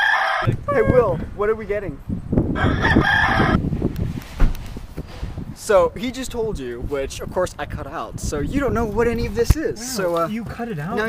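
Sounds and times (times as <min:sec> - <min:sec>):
rooster crowing: 0:00.0 - 0:00.8, 0:02.6 - 0:03.6.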